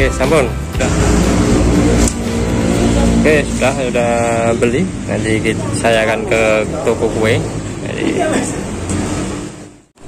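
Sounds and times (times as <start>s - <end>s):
vehicle engine rumbling: 0.4s - 9.9s.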